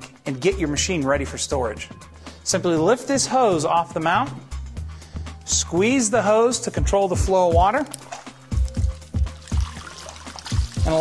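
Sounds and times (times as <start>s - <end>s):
music with bass beat: 6.8s - 11.0s
water pouring from hose: 7.9s - 11.0s.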